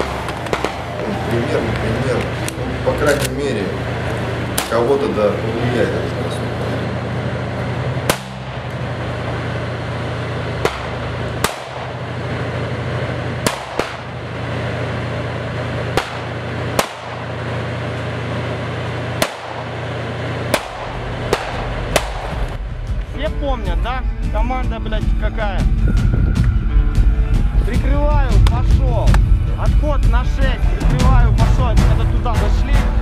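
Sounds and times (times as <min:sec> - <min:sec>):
rifle shots: 0:00.0 - 0:01.0, 0:10.6 - 0:12.2, 0:13.4 - 0:14.3, 0:15.9 - 0:17.8, 0:19.0 - 0:22.6
steady low drone: 0:00.0 - 0:33.0.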